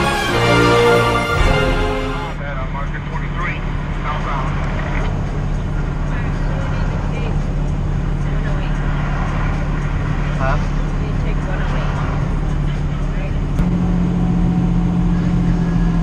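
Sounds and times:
road noise: 0:00.0 - 0:16.0
truck engine drone: 0:00.0 - 0:16.0.

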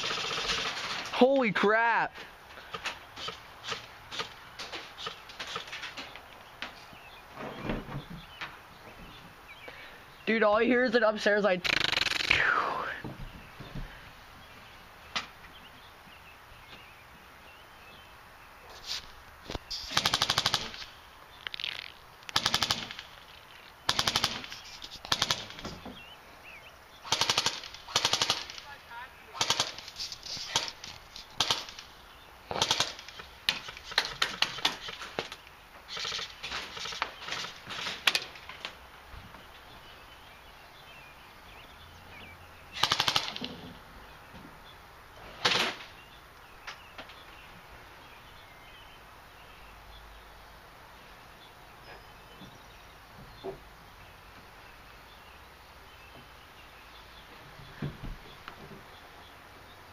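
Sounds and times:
airsoft gun full-auto bursts: 0:00.0 - 0:01.0, 0:11.6 - 0:12.3, 0:19.9 - 0:20.8, 0:22.3 - 0:23.0, 0:23.9 - 0:25.6, 0:27.0 - 0:28.6, 0:29.3 - 0:29.9, 0:31.4 - 0:31.8, 0:32.5 - 0:33.2, 0:42.8 - 0:43.4.

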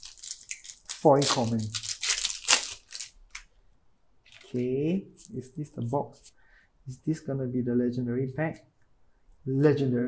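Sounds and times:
foil wrapper crinkling: 0:00.0 - 0:03.5, 0:04.3 - 0:04.6.

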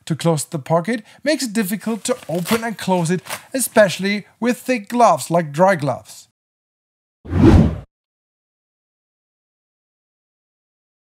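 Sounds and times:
whoosh transition effect: 0:07.3 - 0:07.9.

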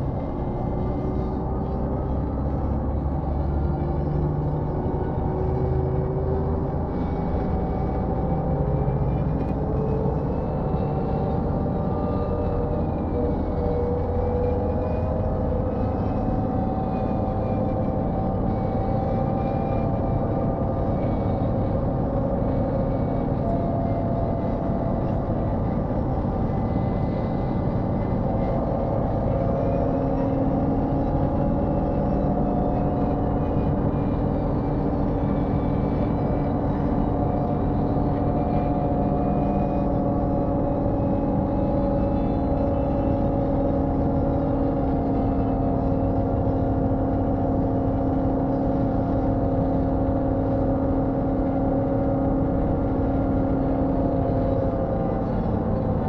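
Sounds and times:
bus diesel engine running: 0:00.0 - 0:56.0
road and tyre noise: 0:00.0 - 0:56.0.

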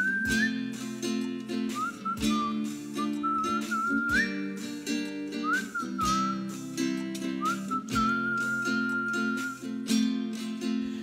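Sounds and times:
strummed acoustic guitar chords: 0:00.0 - 0:11.0
whistled melody: 0:00.0 - 0:11.0.

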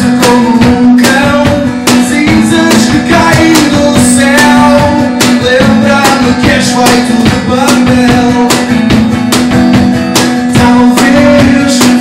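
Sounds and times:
acoustic guitar playing: 0:00.0 - 0:12.0
cajon strikes: 0:00.0 - 0:12.0.

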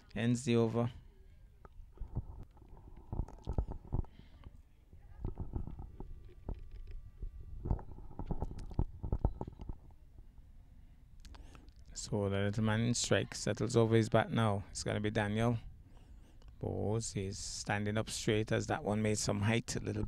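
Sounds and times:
low rumbles on microphone: 0:04.9 - 0:10.3.

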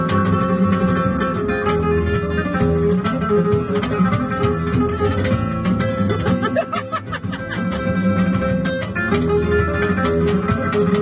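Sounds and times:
solo flamenco guitar: 0:00.0 - 0:11.0.

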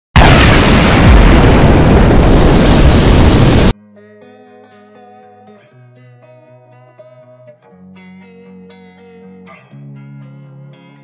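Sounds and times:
loud dense rush of noise: 0:00.2 - 0:03.8.

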